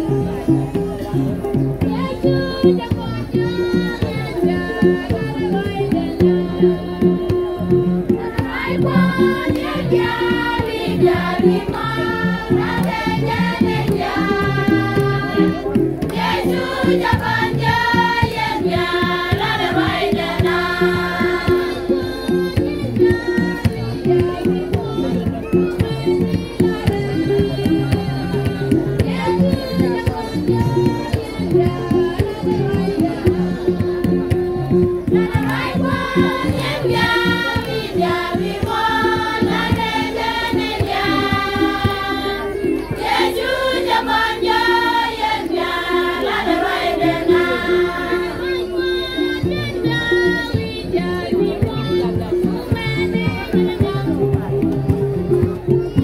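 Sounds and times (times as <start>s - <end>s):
steady beat: 0.0s - 56.0s
stepping bass notes: 0.0s - 56.0s
women's choir singing gospel: 1.5s - 55.0s.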